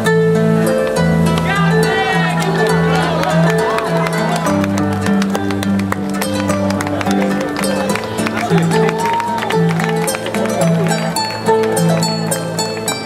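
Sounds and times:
amplified harp playing: 0.0 - 13.0.

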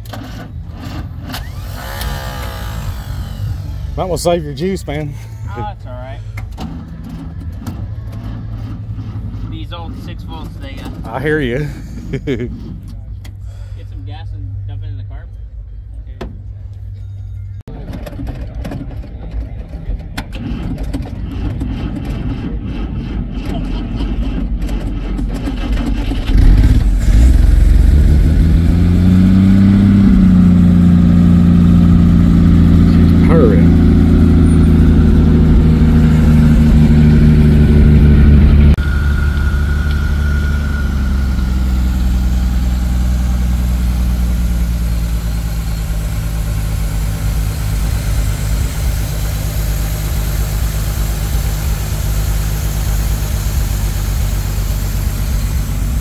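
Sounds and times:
car engine idling: 0.0 - 18.2, 19.0 - 56.0.

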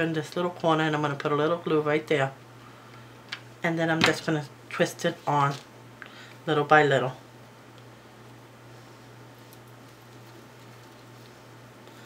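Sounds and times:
steady low hum: 0.0 - 12.0
soft handling ticks and rustles: 9.0 - 12.0.

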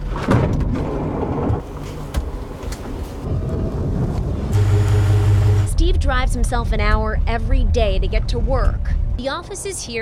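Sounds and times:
van engine humming: 1.6 - 5.7.

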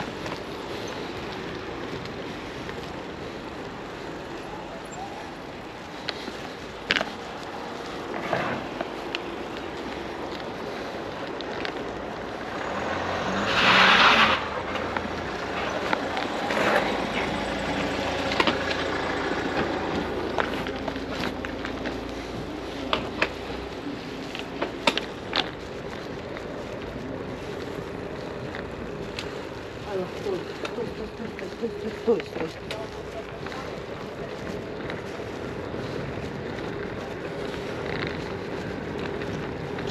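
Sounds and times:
tyres rushing on road: 0.0 - 39.9
tyre hiss on wet road: 5.7 - 15.2.

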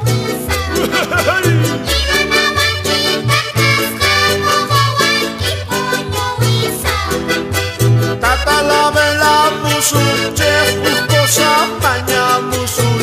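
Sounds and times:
button accordion melody: 0.0 - 13.0
repeating bass line: 0.0 - 13.0
strummed charango and guitar: 0.0 - 13.0.

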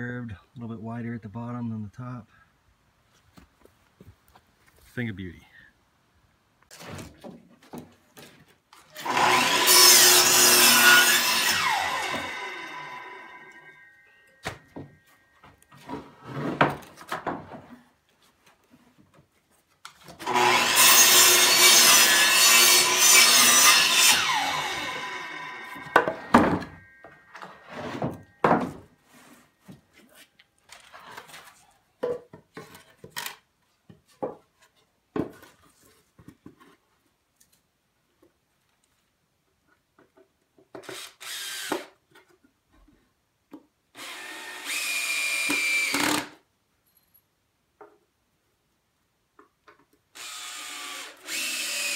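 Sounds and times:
miter saw cutting wood: 9.0 - 13.6, 20.2 - 26.6, 40.9 - 41.9, 44.0 - 46.4, 50.2 - 51.9
wood knocking and clattering: 15.8 - 17.8, 28.0 - 28.9, 32.0 - 33.2, 33.9 - 35.5.

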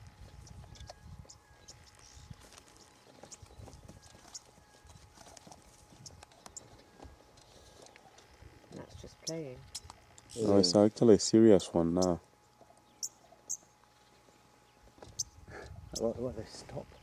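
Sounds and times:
hooves scuffing dry ground: 0.2 - 8.1.

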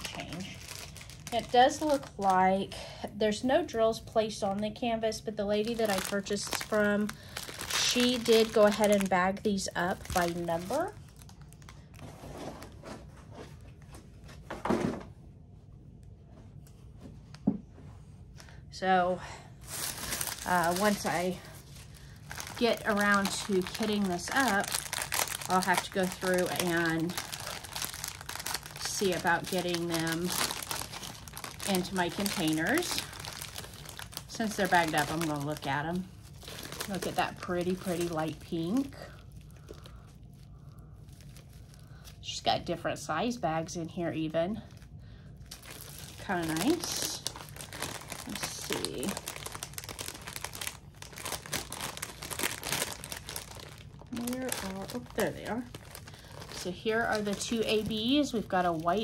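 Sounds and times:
plastic packaging crinkling: 0.0 - 2.7, 4.1 - 14.4, 19.6 - 42.3, 44.6 - 59.0.

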